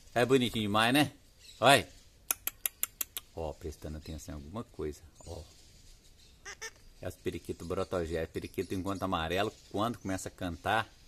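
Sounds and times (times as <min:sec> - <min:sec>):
distant parakeet calls: 0:04.3 - 0:10.6.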